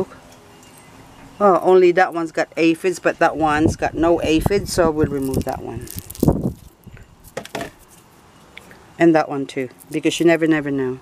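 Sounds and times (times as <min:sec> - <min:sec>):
flower stalks snapping: 0:05.1 - 0:07.4.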